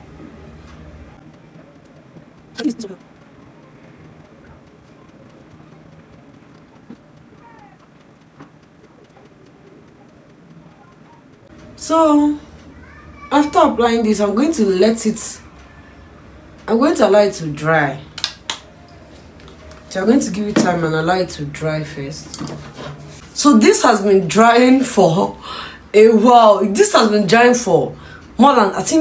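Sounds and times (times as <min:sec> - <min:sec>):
steady low hum: 0:00.0 - 0:29.0
faint ticks: 0:00.6 - 0:13.3.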